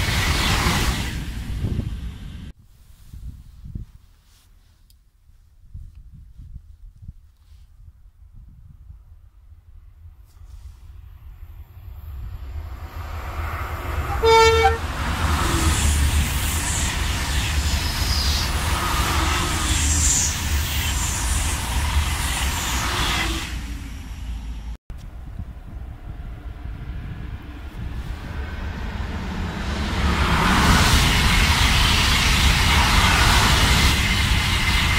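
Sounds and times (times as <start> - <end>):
high-speed train passing: 0.0 - 2.6, 10.8 - 34.9
train horn: 13.9 - 15.7.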